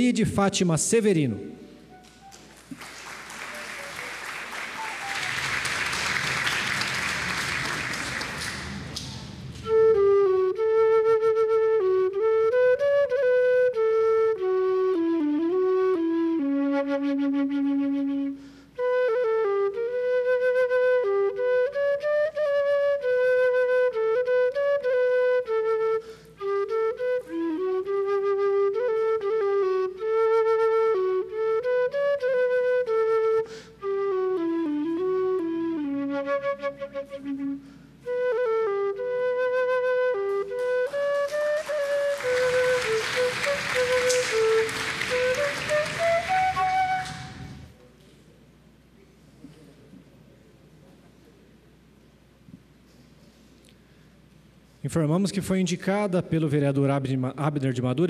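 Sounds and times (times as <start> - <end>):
solo flute melody: 1.5 - 47.8
applause: 2.0 - 9.4, 40.6 - 47.6.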